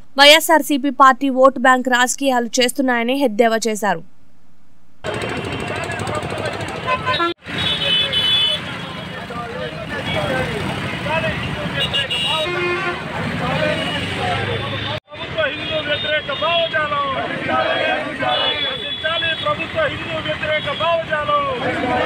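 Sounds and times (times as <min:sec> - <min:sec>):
traffic noise: 0:05.0 - 0:22.0
vehicle horn: 0:06.8 - 0:10.5, 0:11.5 - 0:14.1, 0:17.7 - 0:20.9
protesters shouting slogans: 0:16.7 - 0:19.7, 0:21.0 - 0:22.0.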